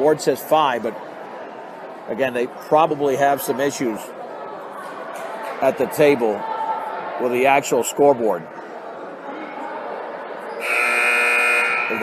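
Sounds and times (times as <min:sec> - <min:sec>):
scoreboard buzzer: 0:10.6 - 0:12.0.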